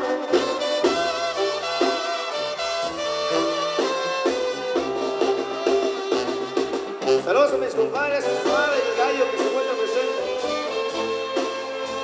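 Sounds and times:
brass section holding notes: 0:00.0 - 0:12.0
drums: 0:00.0 - 0:12.0
sousaphone bass line: 0:00.0 - 0:12.0.

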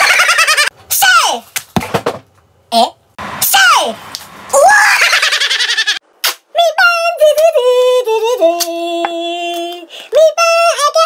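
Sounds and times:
person screaming: 0:04.6 - 0:05.1.

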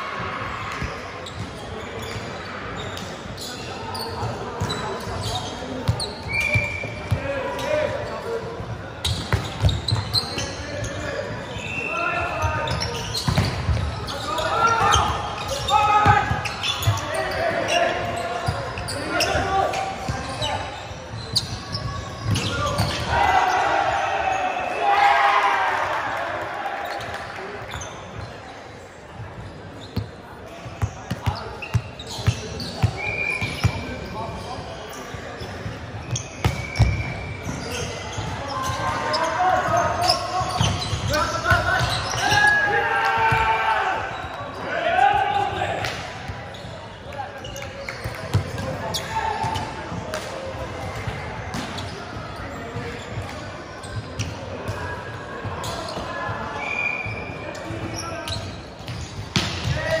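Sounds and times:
players shouting: 0:22.4 - 0:27.2, 0:38.7 - 0:45.8.

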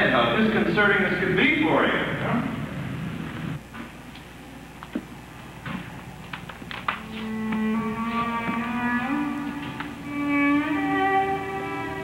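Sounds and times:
violin playing long notes: 0:07.0 - 0:12.0.

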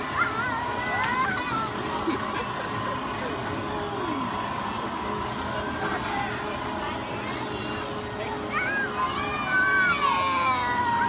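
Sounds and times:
ride mechanical hum: 0:00.0 - 0:11.0
scattered voices: 0:00.0 - 0:11.0.

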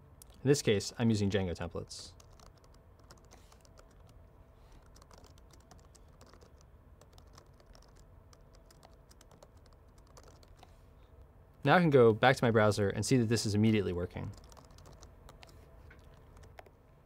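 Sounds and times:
faint keyboard typing: 0:02.1 - 0:10.8, 0:14.2 - 0:16.8.

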